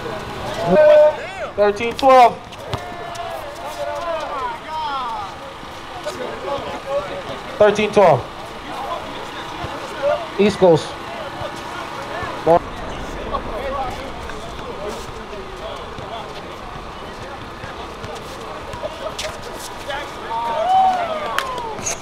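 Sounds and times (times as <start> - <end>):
players shouting and chatting: 0.0 - 22.0
steady background noise: 0.0 - 22.0.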